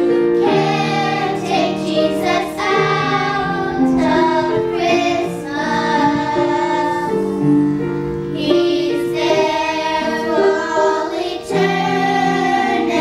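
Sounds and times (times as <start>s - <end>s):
children singing: 0.1s - 13.0s.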